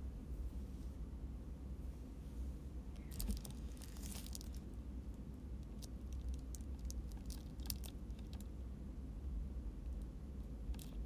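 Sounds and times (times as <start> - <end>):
faint low hum: 0.0 - 11.0
plastic bottle crinkling: 3.1 - 4.6.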